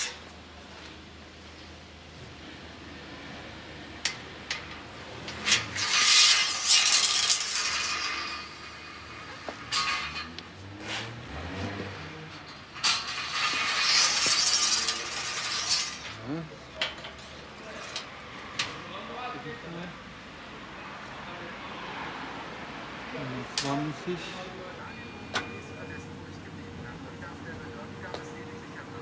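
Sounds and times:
dipstick scraping and hissing: 5.3 - 16.2.

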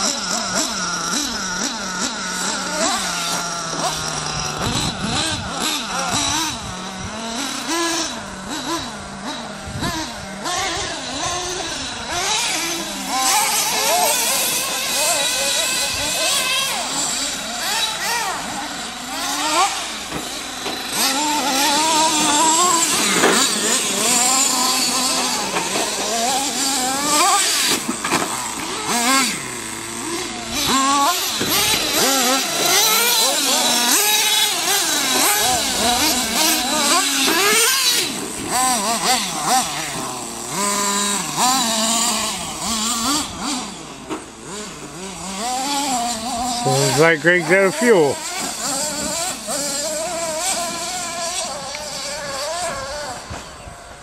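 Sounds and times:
rc car engines revving: 0.0 - 54.0.

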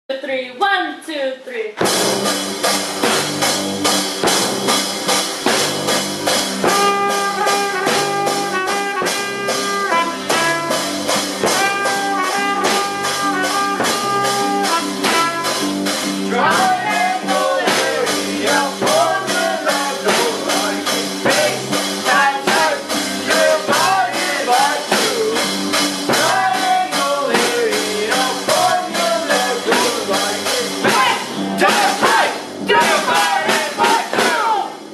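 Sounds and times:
band with ukulele and beat: 1.8 - 34.9
trumpet melody: 5.9 - 34.6
voices singing: 11.4 - 34.9.

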